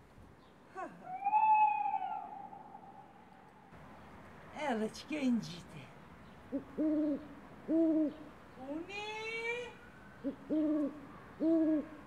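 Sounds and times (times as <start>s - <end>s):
owl-like hoots: 1.0s - 3.7s, 10.2s - 12.0s.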